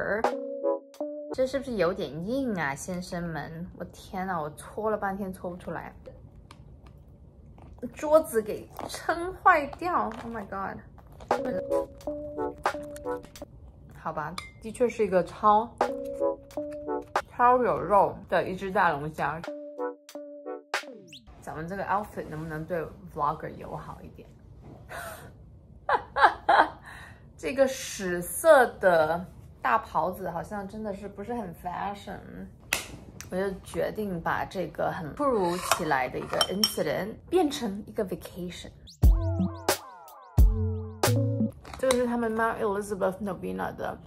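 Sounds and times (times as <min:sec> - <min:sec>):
woman's voice: 0:00.0 - 0:00.3, 0:01.4 - 0:06.1, 0:07.8 - 0:11.9, 0:13.9 - 0:15.9, 0:17.3 - 0:19.5, 0:21.3 - 0:24.3, 0:26.0 - 0:32.6, 0:33.2 - 0:38.8, 0:41.8 - 0:44.0
background music: 0:00.0 - 0:01.9, 0:11.3 - 0:13.4, 0:15.6 - 0:17.4, 0:18.9 - 0:21.3, 0:39.0 - 0:41.6
cutlery clinking on ceramic bowl: 0:35.6 - 0:36.8.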